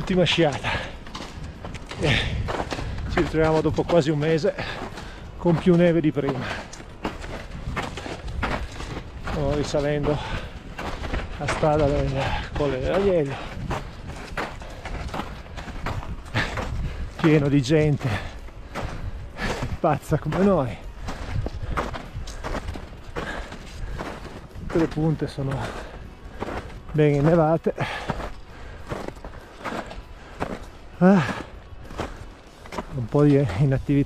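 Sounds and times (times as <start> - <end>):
footsteps walking uphill on skis: 0.0 - 34.0.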